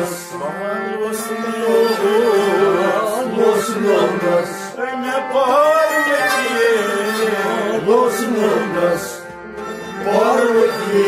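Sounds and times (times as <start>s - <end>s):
man singing: 0.0s - 9.3s, 10.0s - 11.0s
bowed sarangi: 0.0s - 11.0s
harmonium drone: 0.0s - 11.0s.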